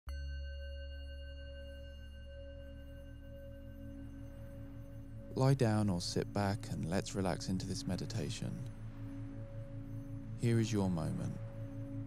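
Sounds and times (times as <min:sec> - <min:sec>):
steady ringing tones: 0:00.1 - 0:12.0.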